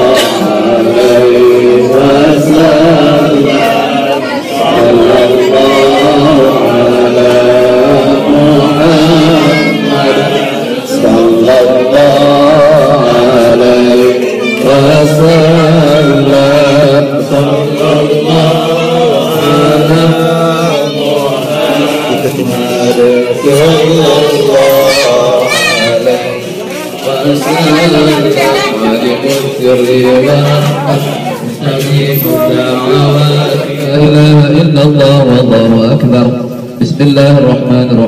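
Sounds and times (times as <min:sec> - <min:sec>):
men chanting: 0:00.0 - 0:38.0.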